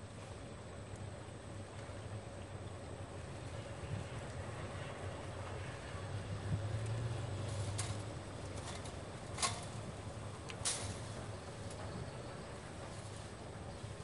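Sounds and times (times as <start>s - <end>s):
distant motor drone: 0.0s - 14.0s.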